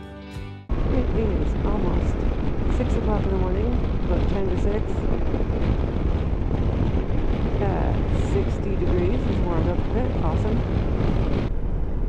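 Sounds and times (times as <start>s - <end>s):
wind rushing on microphone: 0.7s - 12.0s
motorcycle engine running: 0.9s - 11.6s.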